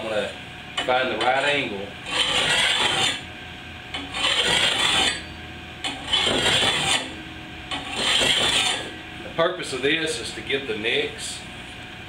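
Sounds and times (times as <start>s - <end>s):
file rasping on steel blade: 2.0s - 3.2s, 4.0s - 5.3s, 5.9s - 8.9s.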